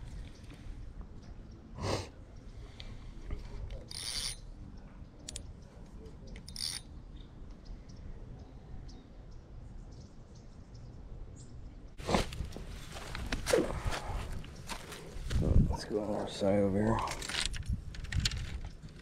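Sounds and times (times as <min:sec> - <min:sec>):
rustling of fishing gear: 0:12.0 - 0:15.8, 0:16.9 - 0:19.0
footsteps crunching on dry dirt: 0:12.0 - 0:16.2.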